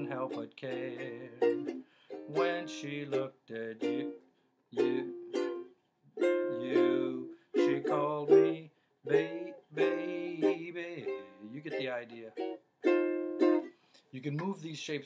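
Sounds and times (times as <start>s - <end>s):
ukulele strumming chords: 0.0s - 4.2s, 4.8s - 13.7s.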